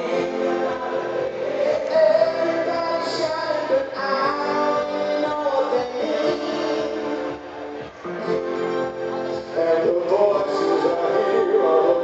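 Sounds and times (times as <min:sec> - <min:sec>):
male vocal singing: 0:00.0 - 0:07.3, 0:09.4 - 0:12.0
electronic backing music: 0:00.0 - 0:12.0.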